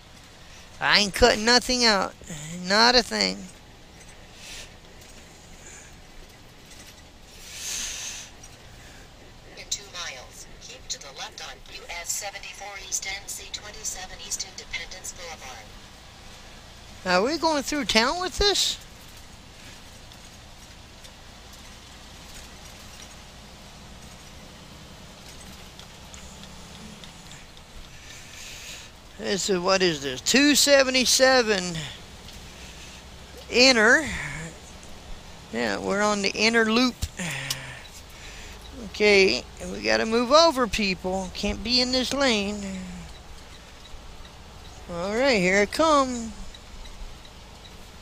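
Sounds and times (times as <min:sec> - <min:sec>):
truck engine and road rumble: 0:00.0 - 0:48.0
faint clicks: 0:37.0 - 0:38.8.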